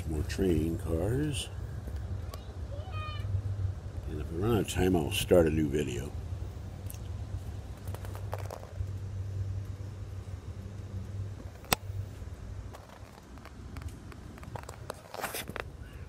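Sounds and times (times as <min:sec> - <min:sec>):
rail coach low hum: 0:00.0 - 0:15.0
small clicks and rattles: 0:06.8 - 0:09.8, 0:12.6 - 0:15.7.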